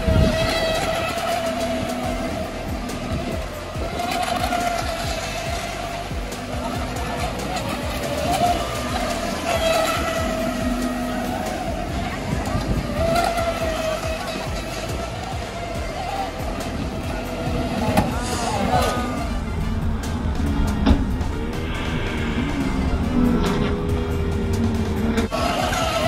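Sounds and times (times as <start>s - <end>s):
high-pitched motor whine: 0.0s - 26.0s.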